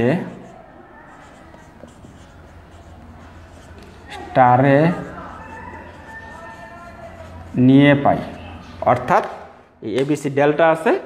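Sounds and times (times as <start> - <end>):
pen scratching on paper: 0.0 - 8.4
steady low hum: 0.0 - 9.8.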